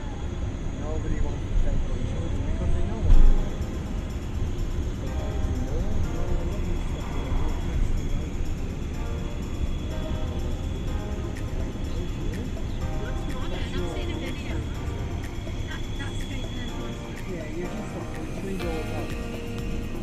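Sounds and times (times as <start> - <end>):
faint voices: 0.0 - 20.0
music: 2.6 - 20.0.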